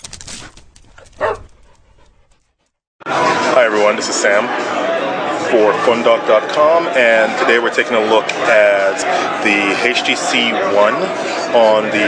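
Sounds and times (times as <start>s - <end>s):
dog bark: 1.2s - 1.6s.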